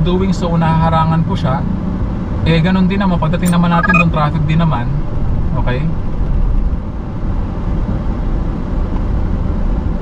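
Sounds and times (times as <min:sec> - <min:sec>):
car engine low rumble: 0:00.0 - 0:10.0.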